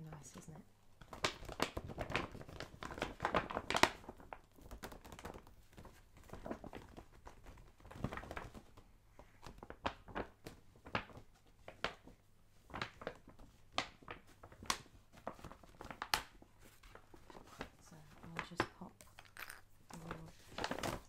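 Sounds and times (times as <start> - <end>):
gift bag crinkling and rustling: 0.4 - 21.0.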